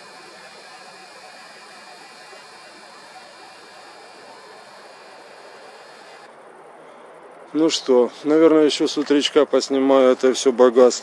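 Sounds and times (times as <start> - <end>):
night ambience hiss: 0.0 - 11.0.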